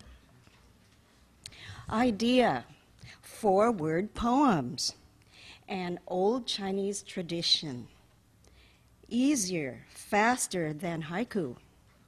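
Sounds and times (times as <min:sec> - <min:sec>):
woman reading: 0:09.1 - 0:11.7.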